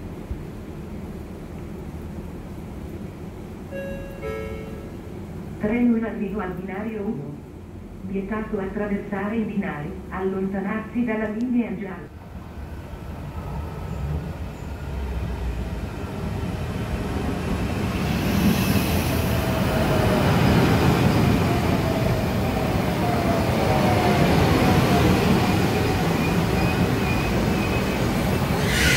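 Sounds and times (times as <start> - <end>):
train rumble: 0.0 - 28.9
train whine falling in pitch: 3.7 - 5.0, 26.2 - 28.9.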